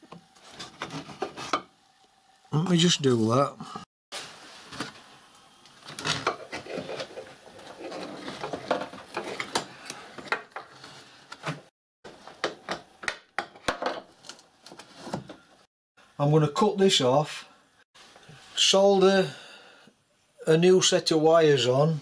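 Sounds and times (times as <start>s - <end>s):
wires rustling and scraping: 0.4s - 1.6s, 4.2s - 12.3s, 14.1s - 15.5s.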